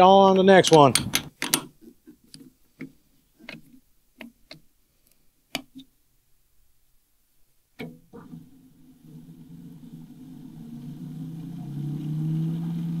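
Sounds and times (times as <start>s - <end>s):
sharp clicks: 0.6s - 1.7s
low machine hum: 8.1s - 13.0s.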